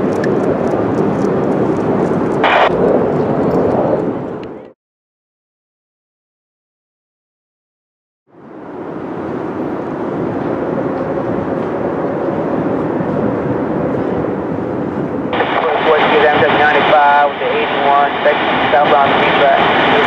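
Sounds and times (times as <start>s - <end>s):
jet airplane passing overhead: 0.0s - 4.8s, 8.3s - 20.0s
radio voice transmission: 2.4s - 2.7s, 15.4s - 20.0s.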